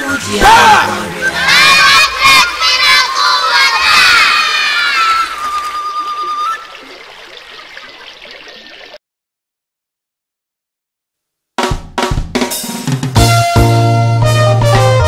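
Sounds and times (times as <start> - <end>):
voices shouting together: 0.0 - 6.4.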